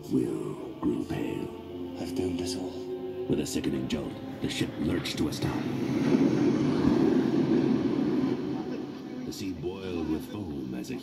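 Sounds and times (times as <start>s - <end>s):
heavy low rumble: 2.3s - 10.1s.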